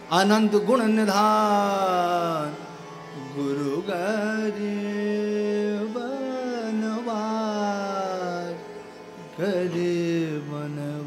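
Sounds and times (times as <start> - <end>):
harmonium drone: 0.0 - 11.0.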